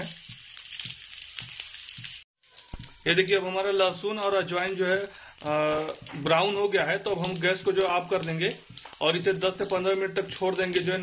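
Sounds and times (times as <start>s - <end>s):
oil sizzling in a pan: 0.0s - 11.0s.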